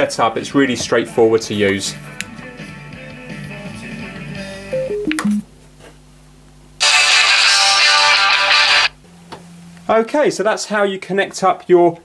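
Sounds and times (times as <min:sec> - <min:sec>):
guitar-led pop music from speakers: 0:01.8 - 0:05.3, 0:06.8 - 0:08.9.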